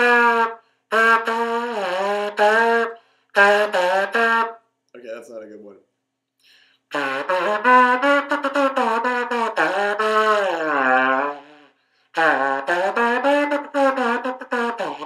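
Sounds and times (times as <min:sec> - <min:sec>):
ceramic trumpet notes: 0:00.0 - 0:04.6, 0:06.9 - 0:15.0.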